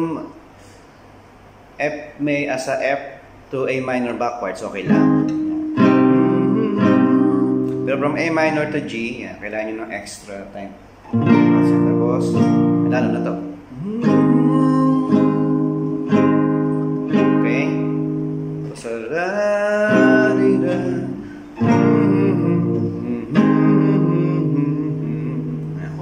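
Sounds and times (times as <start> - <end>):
classical guitar strummed chords: 4.8 - 9.1, 11.0 - 26.0.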